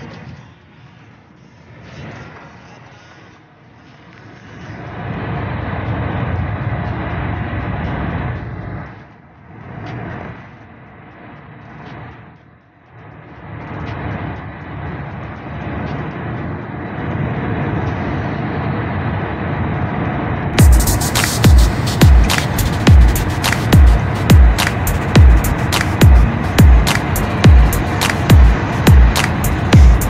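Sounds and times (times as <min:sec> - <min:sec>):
car road and wind noise: 0:00.0 - 0:30.0.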